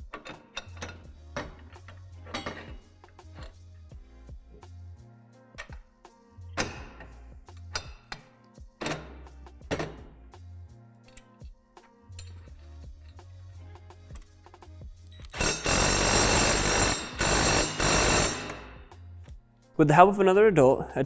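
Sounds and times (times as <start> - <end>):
cordless drill running under load: 15.4 - 18.6.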